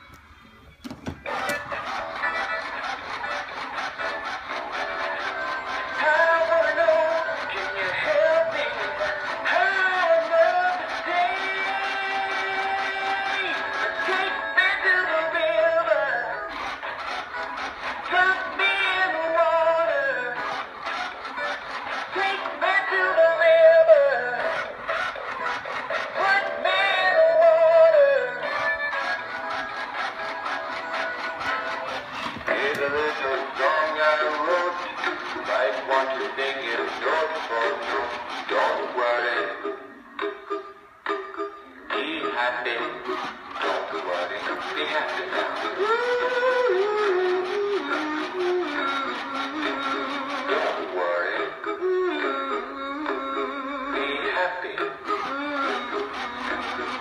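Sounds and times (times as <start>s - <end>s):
singing fish toy song: 1.3s - 57.0s.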